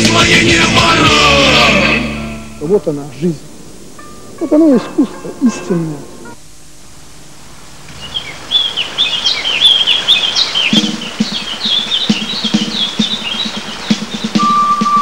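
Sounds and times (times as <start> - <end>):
low rhythmic pulse: 0.0 - 7.1, 10.7 - 15.0
steady held tone: 1.7 - 7.0, 14.0 - 15.0
birds chirping: 2.6 - 6.6, 7.6 - 15.0.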